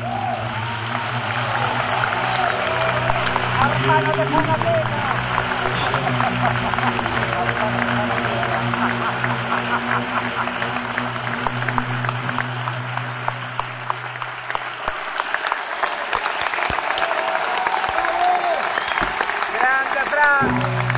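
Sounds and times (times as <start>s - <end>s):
audience applauding: 0.0s - 20.9s.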